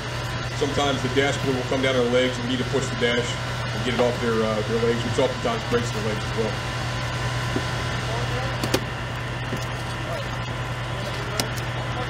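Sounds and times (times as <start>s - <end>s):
steady low hum: 0.0s - 12.0s
faint voices: 9.8s - 12.0s.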